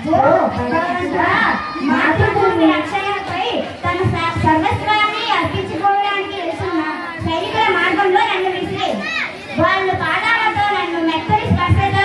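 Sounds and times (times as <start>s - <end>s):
children's voices: 0.6s - 12.0s
girl reciting into a microphone: 1.6s - 12.0s.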